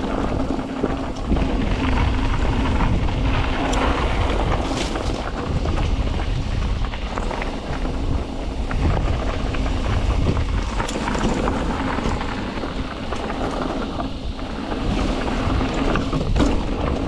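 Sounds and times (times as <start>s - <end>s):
bike clicks and rattles: 0.0s - 17.0s
bike tyres rolling over dirt: 0.0s - 17.0s
wind on microphone: 0.0s - 17.0s.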